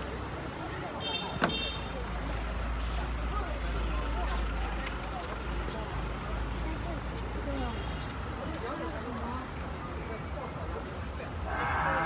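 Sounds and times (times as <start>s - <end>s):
low street rumble: 0.0s - 12.0s
voices in background: 0.0s - 12.0s.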